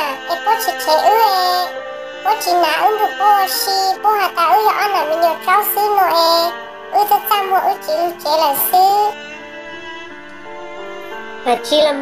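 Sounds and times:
high-pitched voice singing: 0.0s - 1.7s, 2.3s - 9.2s
background music sustained tones: 0.0s - 12.0s.

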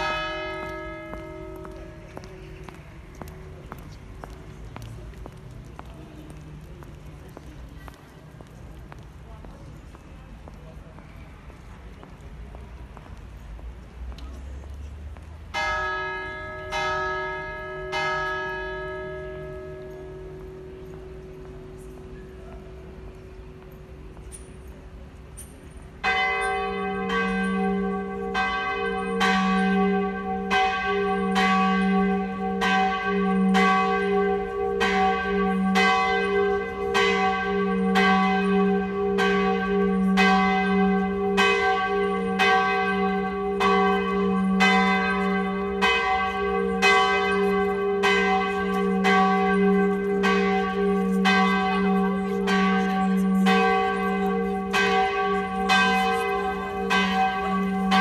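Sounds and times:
large church bell pealing: 0.0s - 5.4s, 15.5s - 58.0s.

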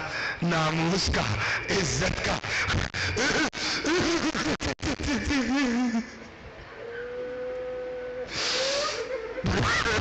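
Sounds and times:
person weeping: 2.7s - 6.3s, 8.7s - 10.0s.

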